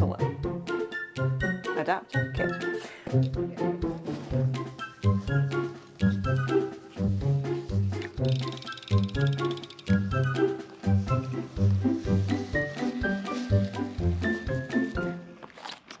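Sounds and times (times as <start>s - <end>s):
music with bass line: 0.0s - 15.2s.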